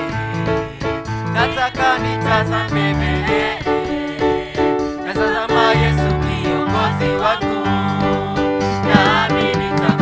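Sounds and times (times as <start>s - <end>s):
instrumental accompaniment: 0.0s - 10.0s
held bass notes: 8.6s - 10.0s.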